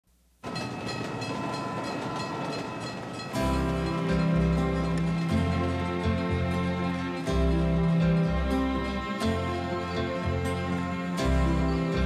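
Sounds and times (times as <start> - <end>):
crossing warning bell ringing: 0.4 - 7.8
freight train rolling: 0.4 - 12.0
music: 0.6 - 12.0.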